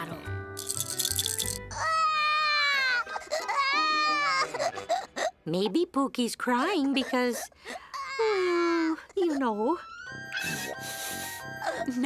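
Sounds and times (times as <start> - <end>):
cartoon baby crying: 1.7 - 5.3, 7.9 - 10.6.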